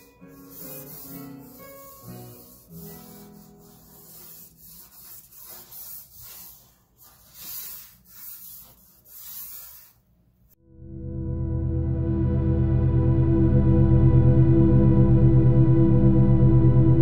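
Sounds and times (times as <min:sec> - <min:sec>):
charcoal scratching on paper: 0:00.0 - 0:10.1.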